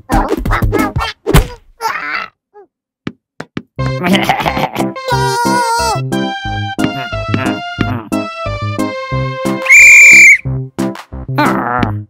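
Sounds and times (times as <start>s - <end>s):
upbeat cartoon music: 0.0s - 1.4s, 3.8s - 12.0s.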